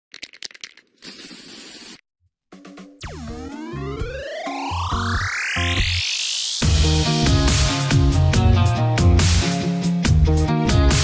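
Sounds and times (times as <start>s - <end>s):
spray can rattling: 0.1s - 2.0s
spray can hissing: 1.0s - 2.0s.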